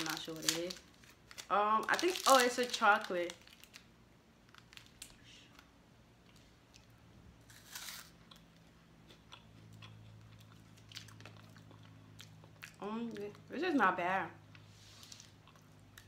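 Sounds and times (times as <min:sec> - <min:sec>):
chewing a crunchy snack: 0:06.2 - 0:13.4, 0:14.5 - 0:16.0.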